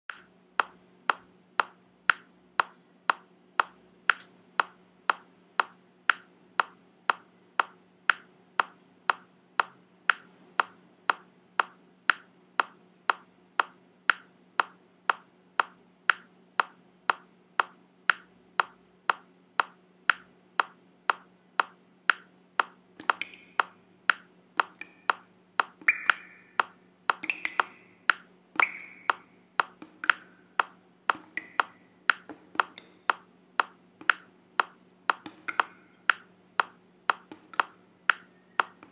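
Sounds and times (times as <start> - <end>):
metronome ticking: 0.1 - 38.9.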